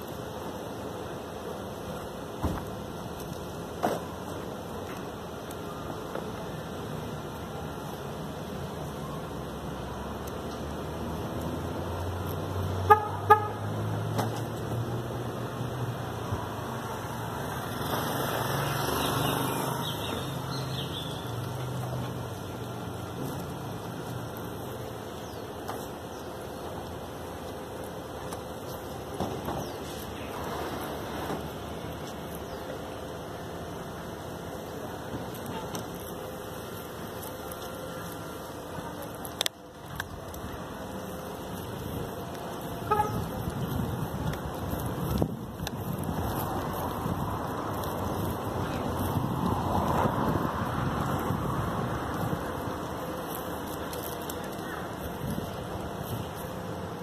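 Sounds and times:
street traffic rumble: 0:00.0 - 0:57.0
vehicle engine humming: 0:00.0 - 0:57.0
car horn toot: 0:12.8 - 0:13.6, 0:42.8 - 0:43.3.

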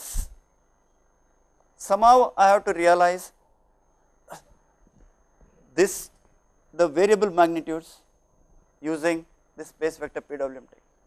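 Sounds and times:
faint high whine: 0:00.0 - 0:11.0
man speaking: 0:01.8 - 0:03.4, 0:05.8 - 0:06.2, 0:06.8 - 0:08.1, 0:08.8 - 0:10.8.

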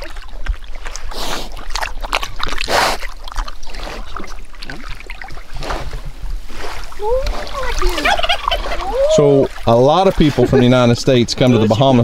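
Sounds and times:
shallow water washing: 0:00.0 - 0:12.0
rising and falling animal calls: 0:07.0 - 0:09.5.

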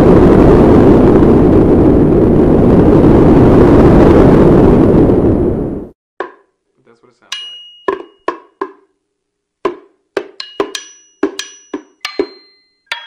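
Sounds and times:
loud steady rumbling: 0:00.0 - 0:05.9.

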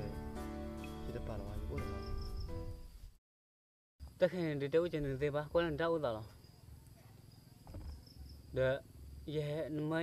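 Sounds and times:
crickets chirring: 0:00.0 - 0:03.0, 0:04.0 - 0:10.0.

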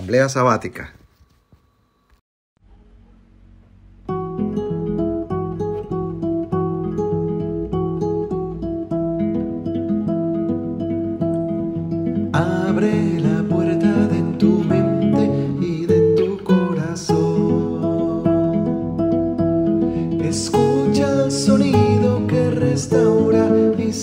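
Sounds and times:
plucked acoustic guitar music: 0:03.5 - 0:24.0
fuller bright accompaniment: 0:04.0 - 0:24.0.

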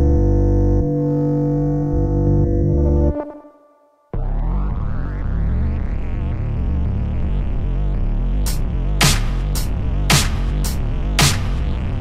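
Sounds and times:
distorted electric guitar chords: 0:00.0 - 0:03.5.

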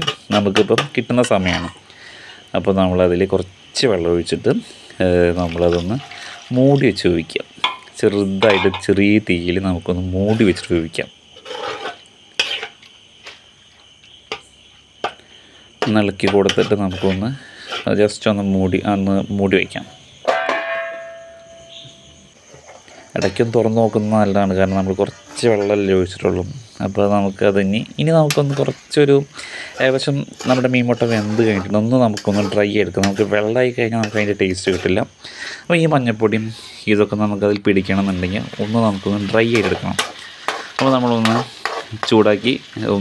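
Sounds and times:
light sizzle: 0:01.3 - 0:18.8, 0:21.3 - 0:43.0
metal spoon scraping pan: 0:07.6 - 0:08.9, 0:11.4 - 0:12.8, 0:15.8 - 0:18.1, 0:24.7 - 0:25.9, 0:28.2 - 0:28.9, 0:29.6 - 0:35.1, 0:39.5 - 0:42.8
steel plate lid knocking and ringing: 0:07.6 - 0:08.9, 0:20.2 - 0:22.0.

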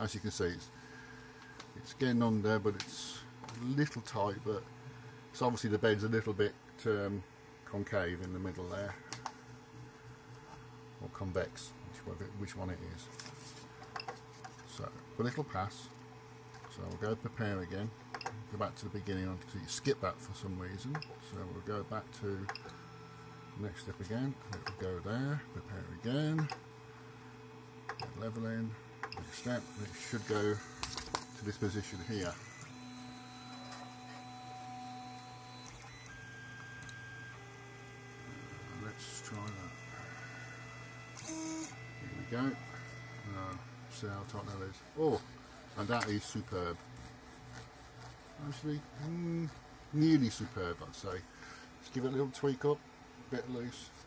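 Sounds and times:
printer humming: 0:00.0 - 0:54.0
stepper motors whining: 0:29.1 - 0:47.2.

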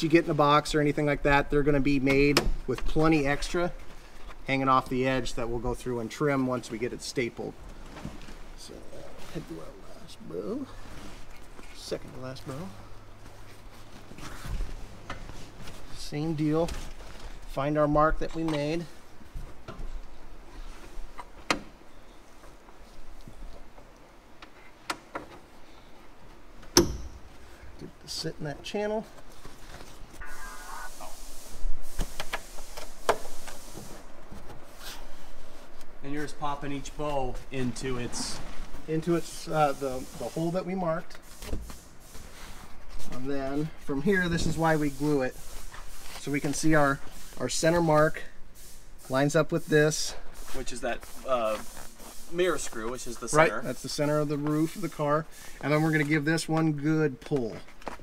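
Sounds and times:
fabric rustling and scraping: 0:10.3 - 0:17.6, 0:32.5 - 0:47.5.

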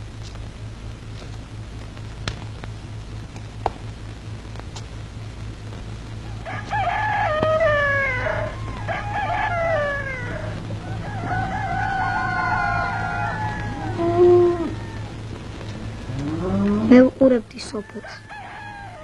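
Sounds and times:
steady low hum: 0:00.0 - 0:19.0
rooster crowing: 0:06.2 - 0:17.0, 0:17.7 - 0:19.0
person's voice: 0:16.5 - 0:18.2.

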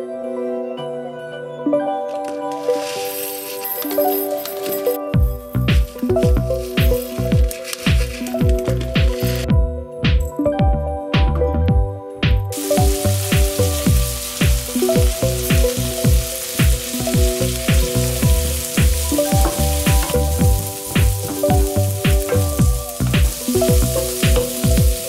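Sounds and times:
background music with beat: 0:00.0 - 0:25.0
food sizzling in a pan: 0:12.5 - 0:25.0
wooden spoon stirring: 0:12.6 - 0:25.0.

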